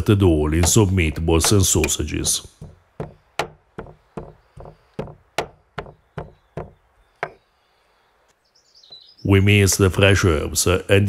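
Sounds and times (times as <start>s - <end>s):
pestle pounding in stone mortar: 0.5s - 7.4s.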